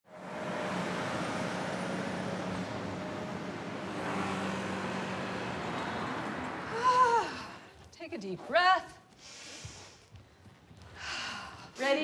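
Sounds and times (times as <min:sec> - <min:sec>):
road traffic noise: 0:00.0 - 0:07.8
car and bus engines humming: 0:00.1 - 0:07.7.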